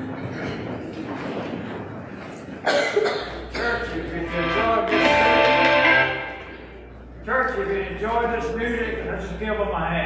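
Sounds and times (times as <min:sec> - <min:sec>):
room noise: 0:00.0 - 0:10.0
person coughing: 0:02.6 - 0:04.0.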